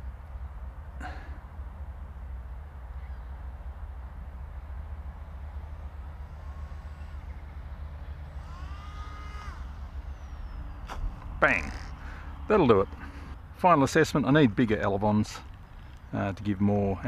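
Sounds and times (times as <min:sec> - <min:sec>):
rising whining tones: 0:05.4 - 0:13.4.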